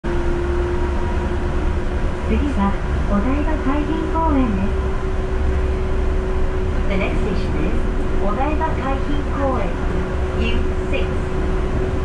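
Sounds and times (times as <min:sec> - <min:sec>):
train rumbling inside car: 0:00.0 - 0:12.0.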